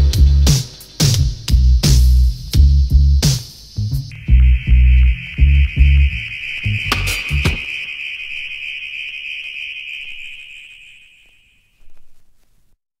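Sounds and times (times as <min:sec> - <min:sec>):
reggae drum and bass hits: 0:00.0 - 0:07.9
high steady electronic tone: 0:04.1 - 0:12.0.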